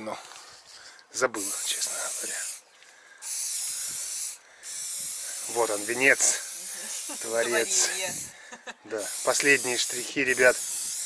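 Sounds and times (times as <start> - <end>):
spray paint can hissing: 1.4 - 2.6, 3.2 - 8.3, 8.9 - 11.0.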